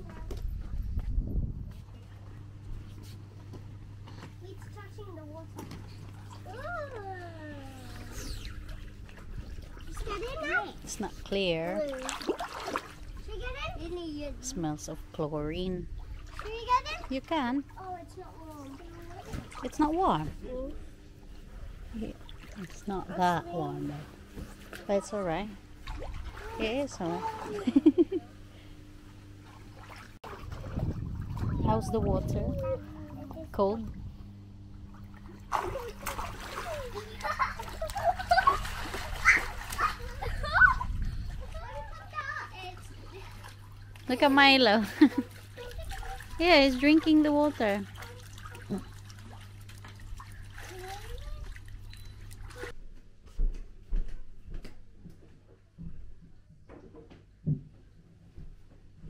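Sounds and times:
water trickling and splashing: 4.5 - 15.2, 15.8 - 28.1, 29.4 - 33.7, 34.8 - 52.8.

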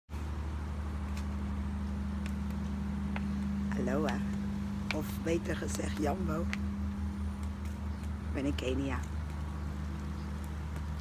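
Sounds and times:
low mechanical hum: 0.1 - 11.0.

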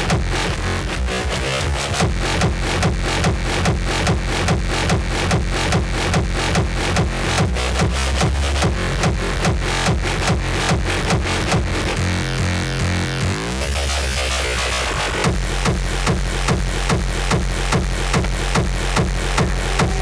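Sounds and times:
electronic dance music: 1.4 - 20.0.

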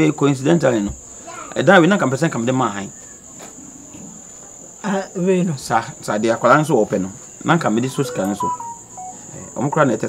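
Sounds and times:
cricket trilling: 0.0 - 10.0.

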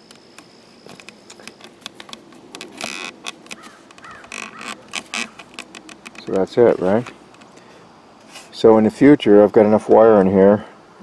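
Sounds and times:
short squeaks: 0.0 - 7.6
wires and plastic connectors rustling: 0.0 - 7.6.

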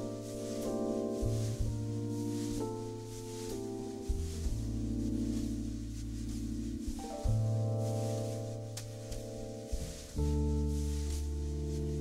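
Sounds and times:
electric keyboard chords: 0.0 - 12.0
long-held bass notes: 0.0 - 12.0.

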